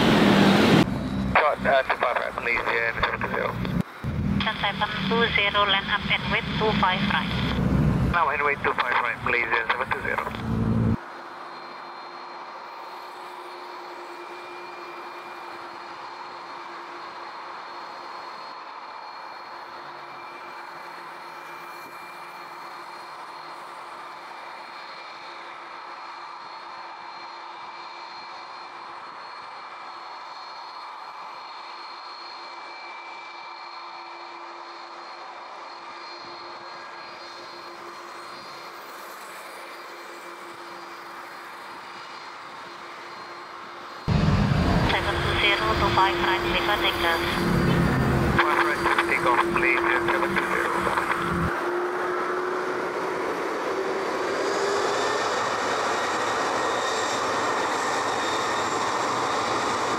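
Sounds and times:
jet engines idling: 0.0s - 59.9s
faint steady whine: 0.9s - 51.8s.

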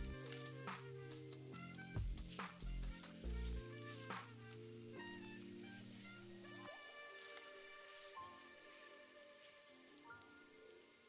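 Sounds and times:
background music with deep bass: 0.0s - 10.8s
oil sizzling in a pan: 1.4s - 11.0s
spatula stirring: 1.9s - 9.8s.

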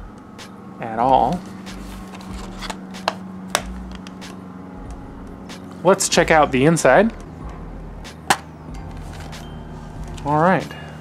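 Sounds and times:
steady low hum: 0.0s - 11.0s
sharp clicks of metal case: 2.7s - 4.4s, 8.3s - 8.5s.

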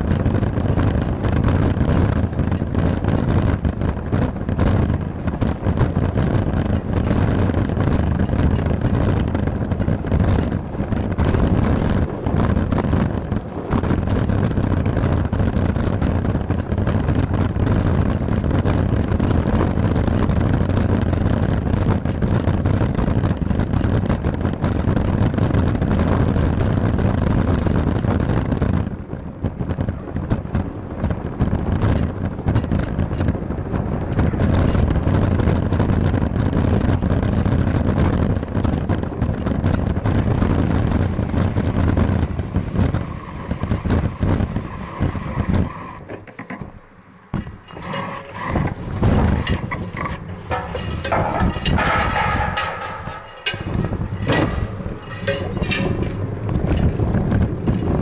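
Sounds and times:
bicycle tyres rolling on pavement: 0.0s - 58.0s
wind rushing over microphone: 0.0s - 58.0s.

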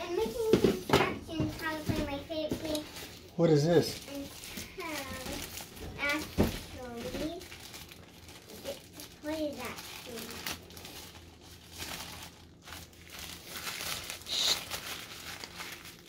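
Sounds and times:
packaging wrap crinkling: 0.0s - 16.0s.

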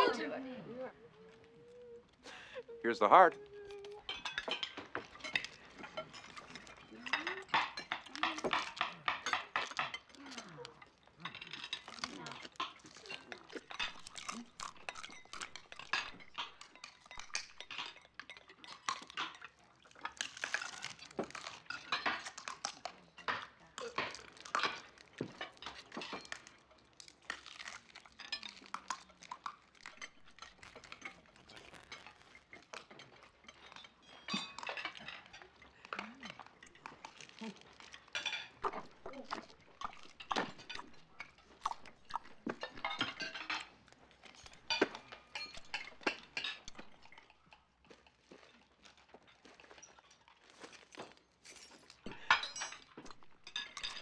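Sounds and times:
cutlery clinking on plates: 3.9s - 54.0s.

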